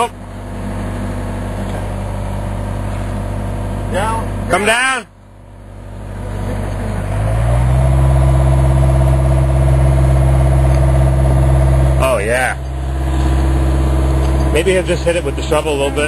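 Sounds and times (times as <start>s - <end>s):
digger diesel engine revving: 5.6s - 16.0s.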